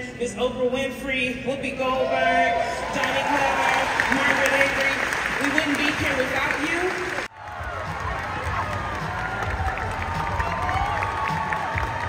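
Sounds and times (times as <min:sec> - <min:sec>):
large audience applauding: 0:02.9 - 0:12.0.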